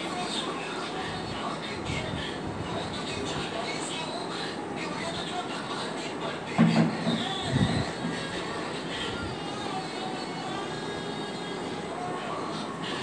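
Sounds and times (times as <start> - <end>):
background hum and hiss: 0.0 - 13.0.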